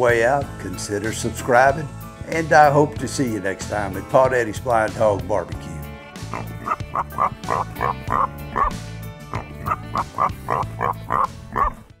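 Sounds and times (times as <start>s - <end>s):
music with bass line: 0.0s - 12.0s
dog barking: 6.4s - 8.7s, 9.4s - 11.8s.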